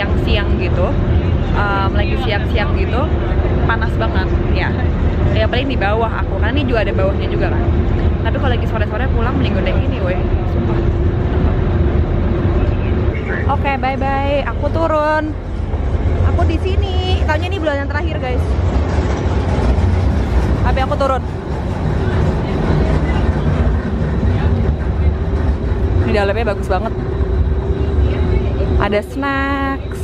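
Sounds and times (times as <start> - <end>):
ferry engine rumble: 0.0 - 30.0
wind buffeting microphone: 0.0 - 30.0
faint voices: 20.6 - 30.0.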